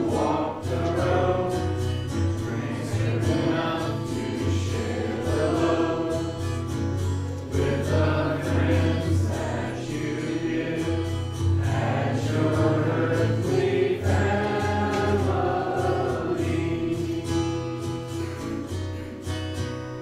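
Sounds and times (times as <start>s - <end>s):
congregation singing a hymn: 0.0s - 19.1s.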